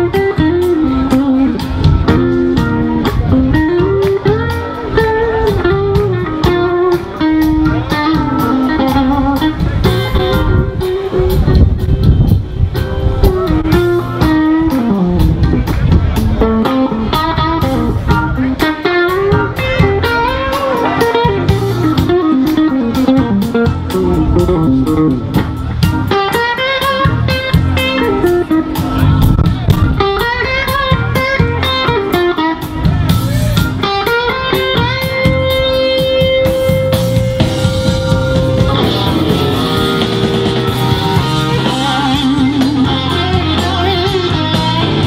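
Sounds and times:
bending electric guitar lead: 0.0s - 45.0s
electric blues band playing: 0.0s - 45.0s.

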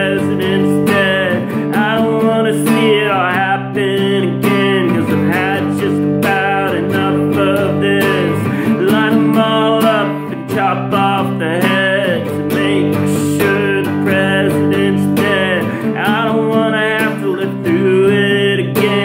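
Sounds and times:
acoustic guitar strumming: 0.0s - 19.0s
man singing: 0.0s - 19.0s.

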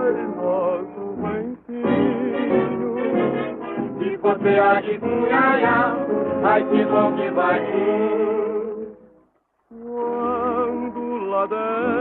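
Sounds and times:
samba orchestra on old record: 0.0s - 12.0s.

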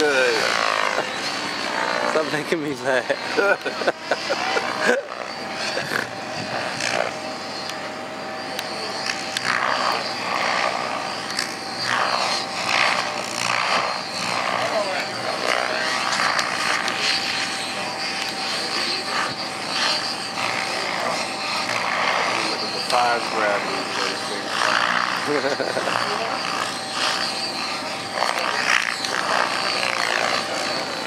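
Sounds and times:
model helicopter whine: 0.0s - 31.0s.

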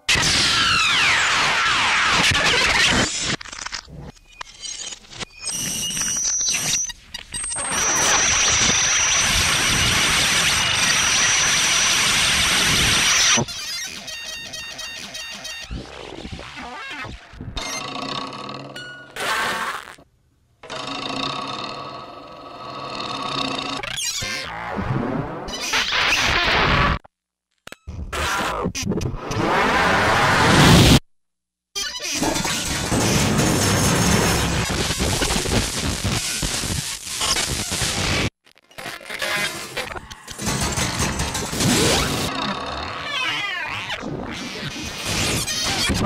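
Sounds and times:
clattering noise: 32.1s - 35.2s, 39.1s - 42.8s.

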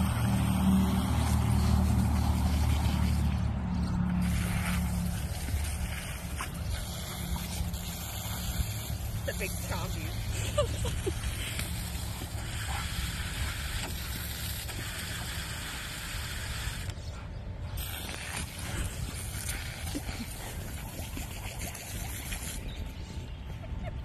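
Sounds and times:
hose nozzle spraying water: 0.0s - 17.0s, 17.8s - 22.6s
constant low rumble: 0.0s - 24.0s.

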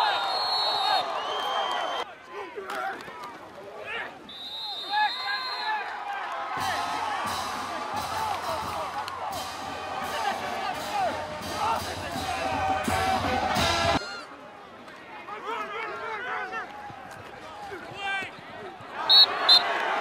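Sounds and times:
people shouting and cheering: 0.0s - 20.0s
music with drum beat and bass: 6.6s - 14.0s.

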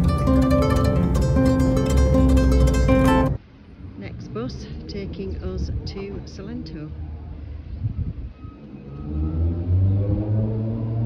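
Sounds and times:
minibus engine revving: 0.0s - 3.4s, 8.7s - 11.0s.

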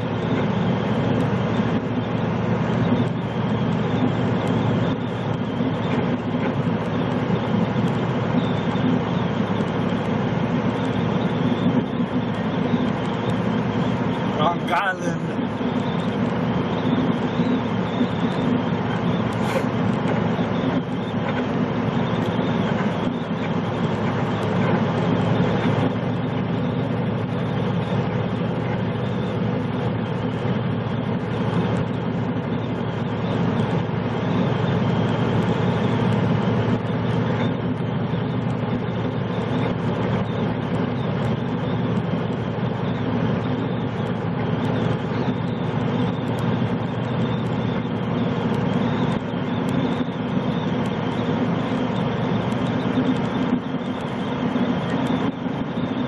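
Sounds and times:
diesel truck engine running: 0.0s - 56.0s
road and tyre noise: 0.0s - 56.0s.

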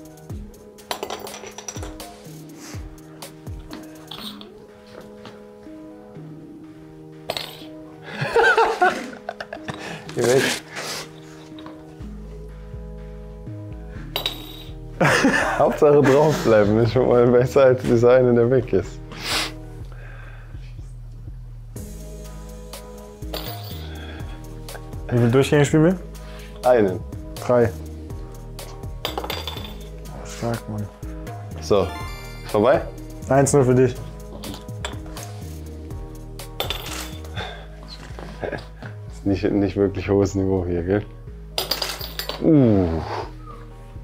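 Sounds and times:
background music of held tones: 0.0s - 44.0s.

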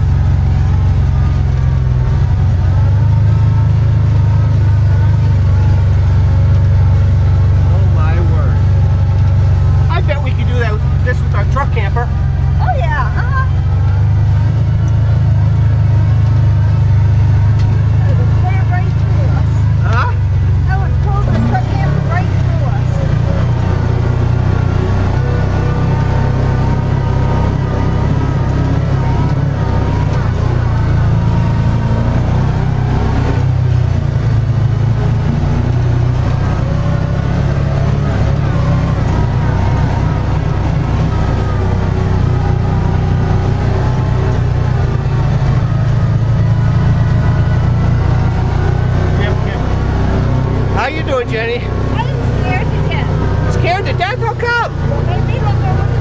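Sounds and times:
vehicle engine rumbling: 0.0s - 56.0s.

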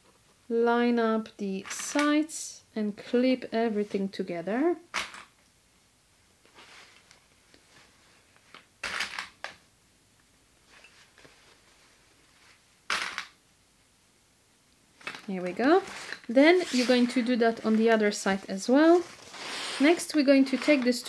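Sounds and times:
fabric rustling: 6.5s - 8.4s, 10.6s - 12.7s, 15.0s - 21.0s.

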